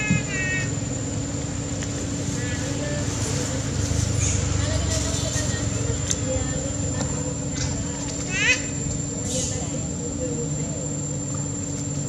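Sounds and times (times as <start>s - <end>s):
steady low rumble: 0.0s - 12.0s
faint indistinct voices: 1.8s - 12.0s.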